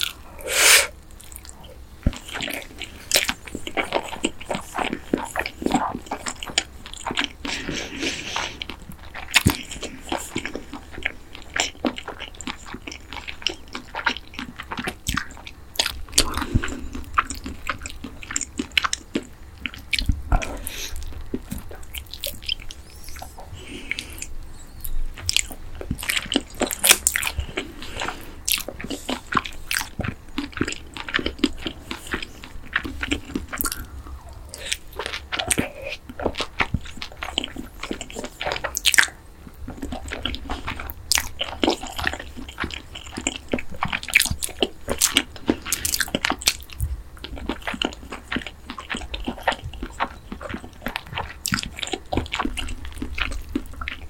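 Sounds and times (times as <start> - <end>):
crunchy chewing of fried chicken: 0.0 - 54.0.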